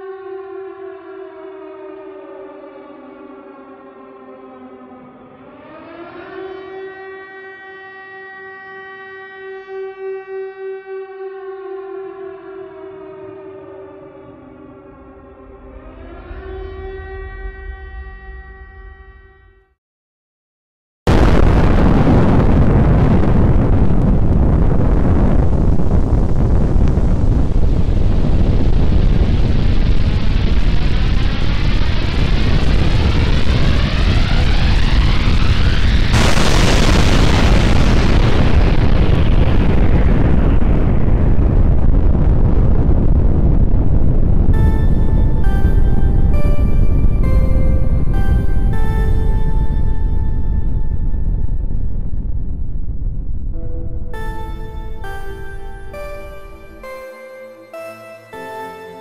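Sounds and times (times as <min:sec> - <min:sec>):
air-raid siren wailing: 0:00.0 - 0:19.5, 0:26.8 - 0:40.8, 0:44.3 - 0:52.6, 0:53.6 - 0:59.0
low rumble: 0:21.1 - 0:57.2.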